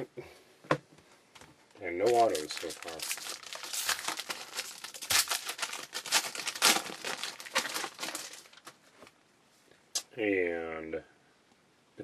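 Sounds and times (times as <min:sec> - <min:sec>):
foil wrapper tearing and crinkling: 0:02.0 - 0:08.8.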